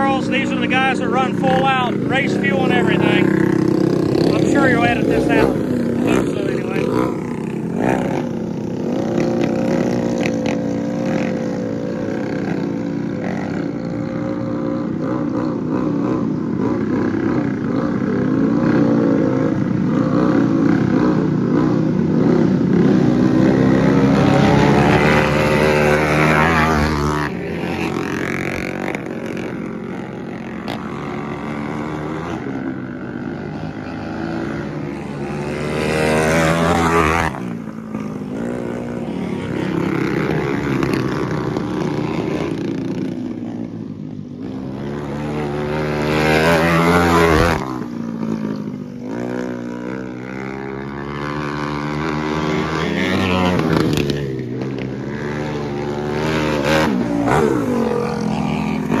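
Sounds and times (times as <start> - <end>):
go-kart engines racing: 0.0 - 59.0.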